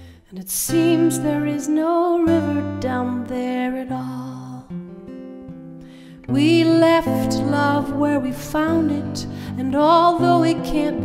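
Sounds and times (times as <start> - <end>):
acoustic guitar strumming: 0.7 - 11.0.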